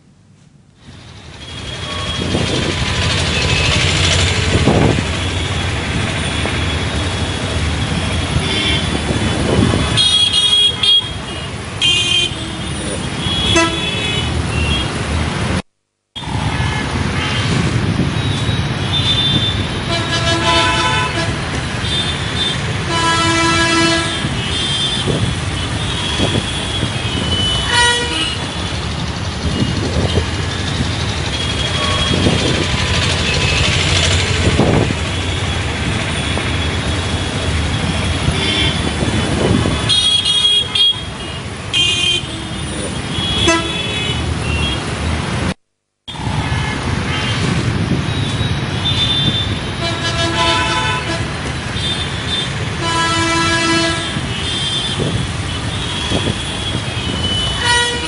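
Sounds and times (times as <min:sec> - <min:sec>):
road traffic rumble: 0:00.0 - 0:58.0
vehicle horns honking: 0:01.4 - 0:07.4, 0:08.0 - 0:15.0, 0:16.2 - 0:28.8, 0:29.4 - 0:44.9, 0:46.1 - 0:58.0.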